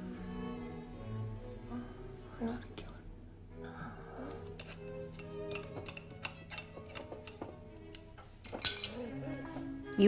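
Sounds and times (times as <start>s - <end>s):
quiet background music: 0.0s - 10.0s
spoon clinking on china and metal: 4.6s - 9.1s.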